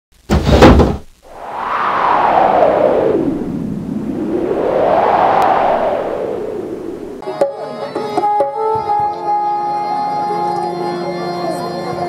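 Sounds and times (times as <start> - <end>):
whooshing sound effect: 1.3 - 7.2.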